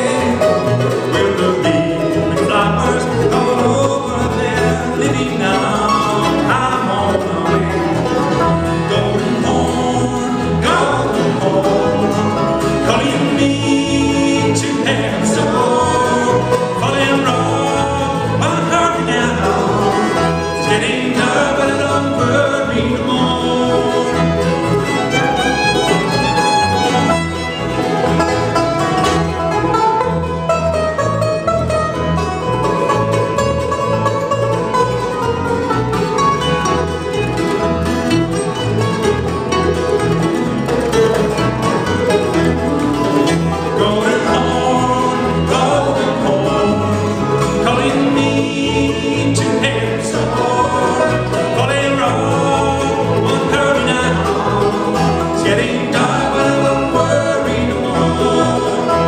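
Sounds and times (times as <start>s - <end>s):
bluegrass band playing: 0.0s - 59.0s.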